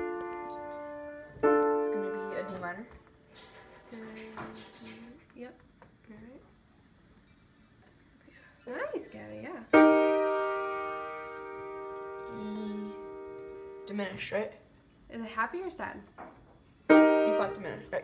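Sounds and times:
piano chord ringing: 0.0 - 2.9, 9.7 - 14.0, 16.9 - 18.0.

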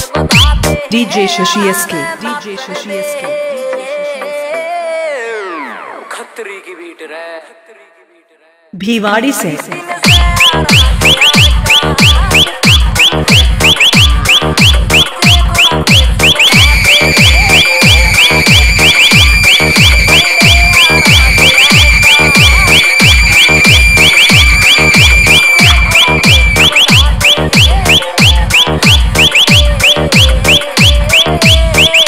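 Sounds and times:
heavy bass kicks: 0.0 - 0.8, 10.0 - 32.0
held high synth note: 15.6 - 28.0.

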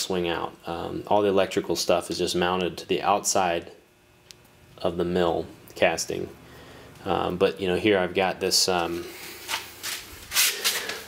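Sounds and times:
soft rubbing and rustling: 8.9 - 11.0.

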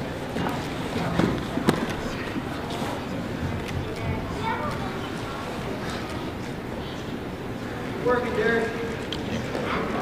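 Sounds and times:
hubbub of people in a hall: 0.0 - 10.0.

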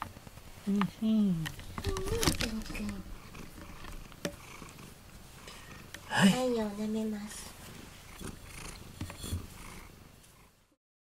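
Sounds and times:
cat purring: 0.2 - 10.8.

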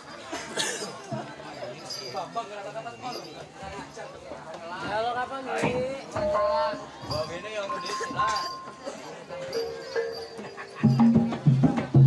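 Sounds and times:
metallophones ringing: 6.1 - 12.0.

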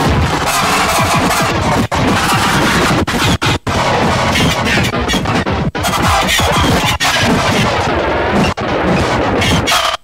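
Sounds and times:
harsh noise electronic music: 0.0 - 10.0.

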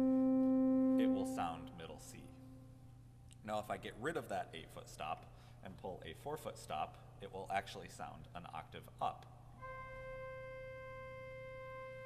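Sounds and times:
pipe organ steady note: 0.0 - 2.8, 9.6 - 12.0.

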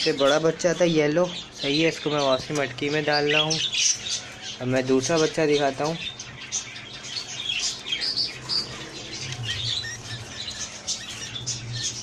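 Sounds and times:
budgerigars chirping and squawking: 0.0 - 12.0.

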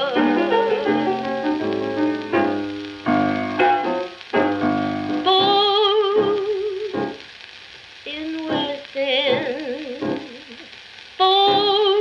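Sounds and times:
woman singing with piano: 0.0 - 1.7, 5.2 - 7.2, 8.1 - 12.0
record surface crackle: 0.0 - 12.0.

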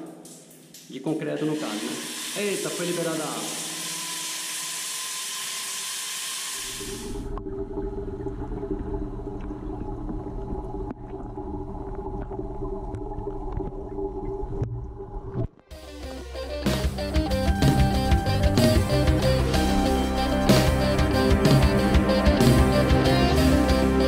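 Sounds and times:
low droning music: 13.0 - 24.0
guitar music: 15.7 - 24.0.

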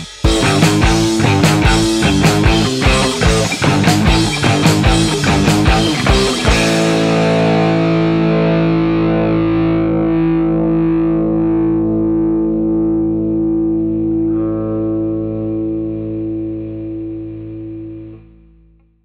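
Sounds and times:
distorted electric guitar chord ringing: 0.0 - 18.8.

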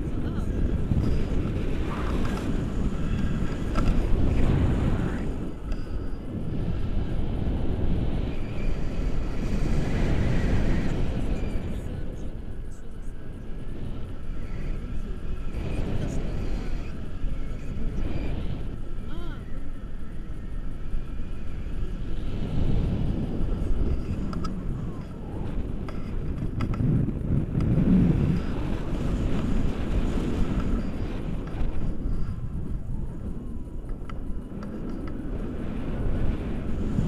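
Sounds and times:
indistinct voices talking: 0.0 - 7.2, 9.4 - 26.3
wind buffeting microphone: 0.0 - 37.0.

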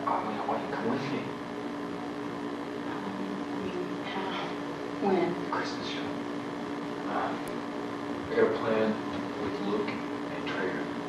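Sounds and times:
low hum with constant tones: 0.0 - 11.0.

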